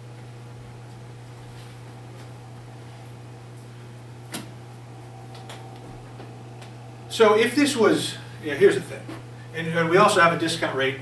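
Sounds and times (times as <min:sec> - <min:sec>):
low ventilation hum: 0:00.0 - 0:11.0.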